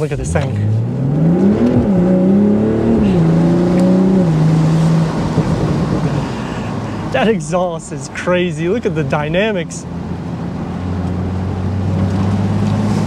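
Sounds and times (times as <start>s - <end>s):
car engine accelerating hard: 0.0s - 7.6s, 8.2s - 13.0s
road noise: 0.0s - 13.0s.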